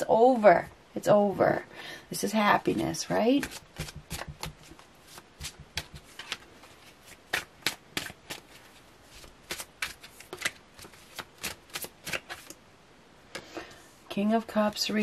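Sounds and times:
cards being shuffled: 3.4s - 12.6s.

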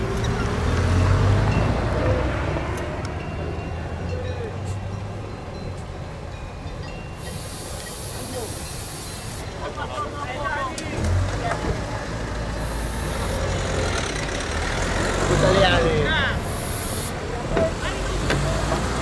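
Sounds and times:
sharp hissing: 7.2s - 9.6s, 12.6s - 13.6s, 16.4s - 17.2s
people talking: 7.3s - 14.4s, 15.3s - 19.0s.

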